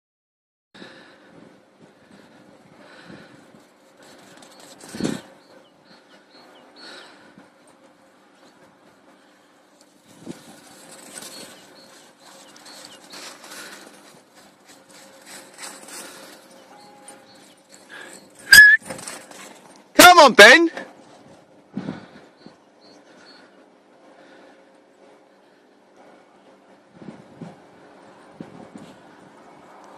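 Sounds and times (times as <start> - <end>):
faint rustling: 3.0 - 19.9.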